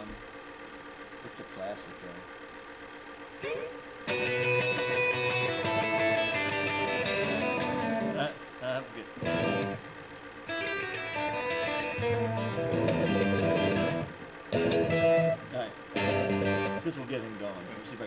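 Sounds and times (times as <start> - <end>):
guitar music: 3.4 - 8.4, 9.2 - 9.9, 10.5 - 17.6.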